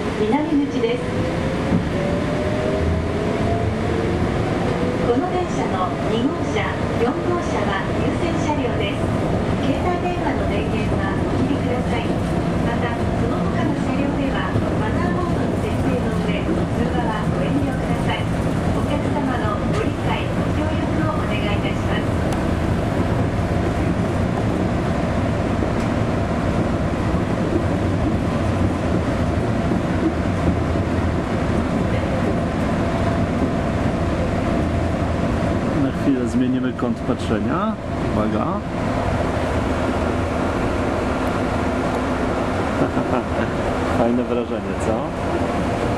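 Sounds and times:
train carriage rumble: 0.0 - 45.9.

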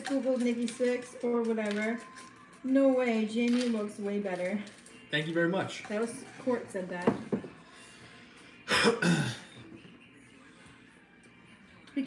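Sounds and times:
person clearing throat: 8.7 - 9.5.

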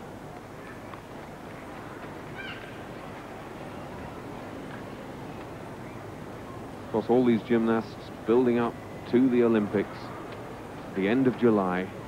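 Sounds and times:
gymnastics hall background noise: 0.0 - 12.0.

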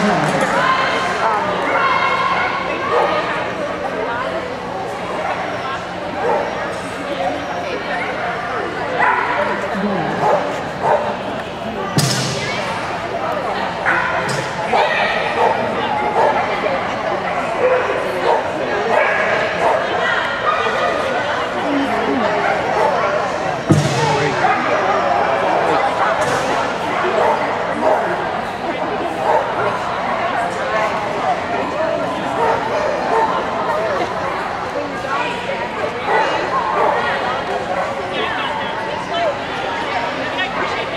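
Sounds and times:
echoing voices in arena: 0.0 - 40.9.

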